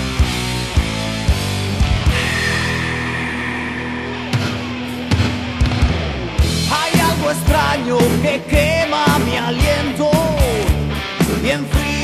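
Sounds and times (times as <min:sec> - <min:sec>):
heavy metal band chord: 0:00.0 - 0:08.8
drum hits: 0:01.8 - 0:06.8
person singing: 0:06.7 - 0:10.7, 0:11.3 - 0:12.0.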